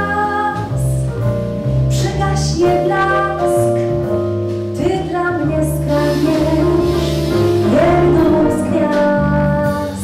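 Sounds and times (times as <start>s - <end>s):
woman singing into a microphone: 0.0s - 1.0s, 1.9s - 3.9s, 4.8s - 10.0s
double bass: 0.0s - 10.0s
drums: 0.0s - 10.0s
saxophone: 5.8s - 10.0s.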